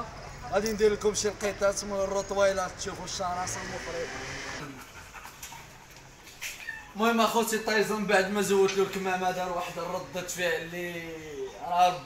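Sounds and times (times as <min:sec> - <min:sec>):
dog panting: 0:04.6 - 0:06.4.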